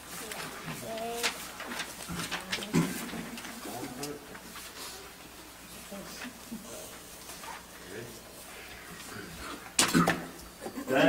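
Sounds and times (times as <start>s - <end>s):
rustling or shuffling: 0.0s - 9.2s.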